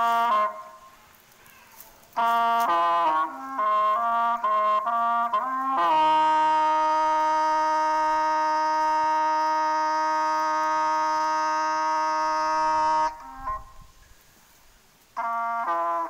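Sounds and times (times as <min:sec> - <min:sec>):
short brass notes: 0:00.0 - 0:01.0, 0:01.8 - 0:13.9, 0:15.2 - 0:16.0
trumpet note held: 0:00.0 - 0:01.0, 0:02.2 - 0:13.9, 0:15.2 - 0:16.0.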